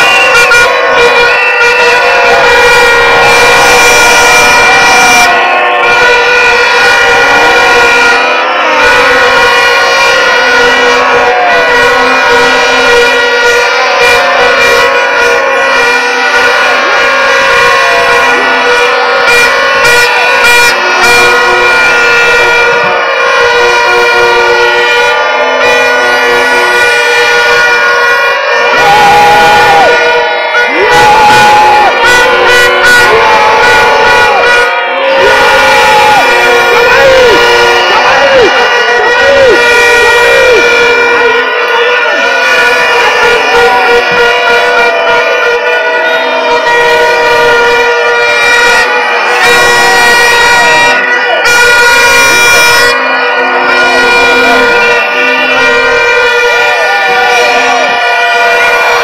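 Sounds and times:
crowd noise: 0.0s - 59.0s
plastic stadium horns droning: 0.0s - 59.0s.

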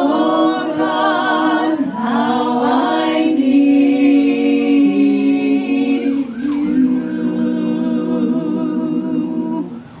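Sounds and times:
group singing in harmony: 0.0s - 10.0s.

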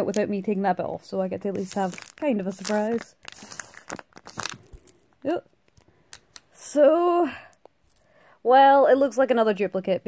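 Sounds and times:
plastic packaging crinkling: 1.4s - 6.5s.

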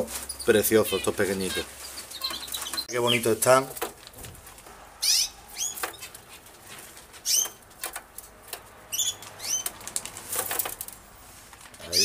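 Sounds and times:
finches chirping: 0.2s - 3.3s, 5.0s - 6.4s, 7.2s - 7.7s, 8.9s - 9.8s.

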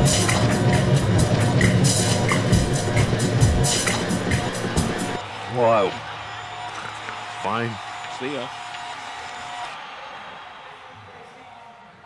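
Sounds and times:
music: 0.0s - 5.2s.

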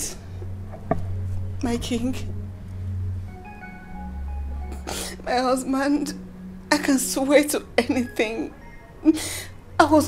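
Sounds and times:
low synth drone: 0.0s - 10.0s
held organ-like notes: 0.2s - 9.1s.

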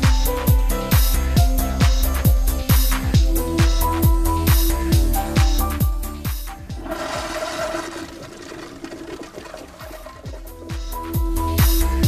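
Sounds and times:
toilet flushing: 6.6s - 11.2s
electronic dance beat: 9.7s - 12.0s.

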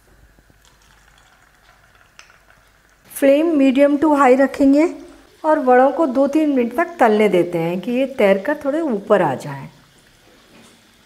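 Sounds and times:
food sizzling in hot oil: 0.0s - 11.0s
small crackles of oil: 0.3s - 3.1s, 9.8s - 11.0s.

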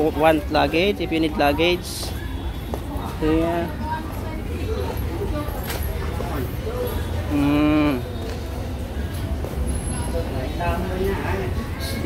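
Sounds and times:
busy market background: 0.0s - 12.0s
man humming: 7.3s - 8.0s.

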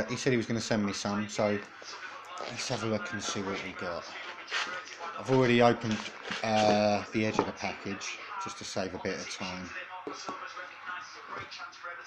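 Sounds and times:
faint background speech: 0.0s - 12.0s
plastic bags rustling: 3.1s - 8.1s.

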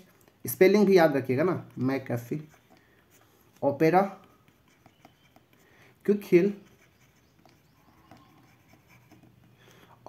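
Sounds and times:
stylus writing on tablet: 0.7s - 10.0s.

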